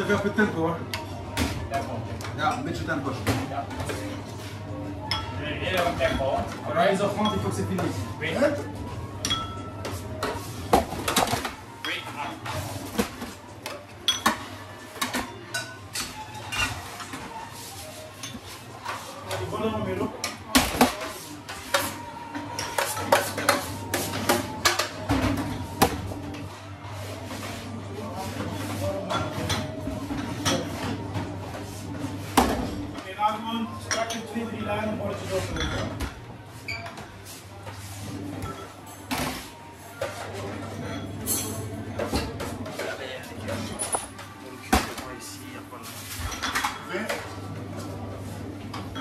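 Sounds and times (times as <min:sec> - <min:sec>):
crockery and utensils clattering: 0:09.2 - 0:17.4, 0:20.2 - 0:26.5, 0:28.4 - 0:31.6, 0:38.3 - 0:45.1, 0:46.0 - 0:47.4.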